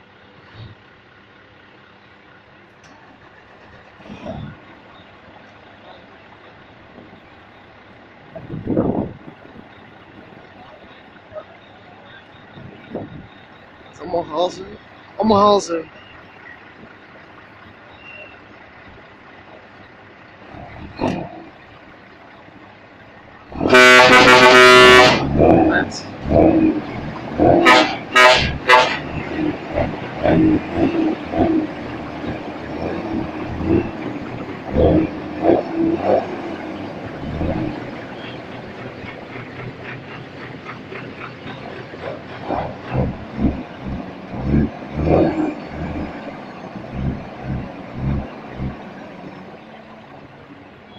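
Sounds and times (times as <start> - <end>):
outdoor background noise: 0.0 - 50.9
trucks idling: 0.0 - 50.9
truck air horn toots: 23.5 - 25.6, 27.4 - 29.3
low thumps and bursts: 24.0 - 48.9.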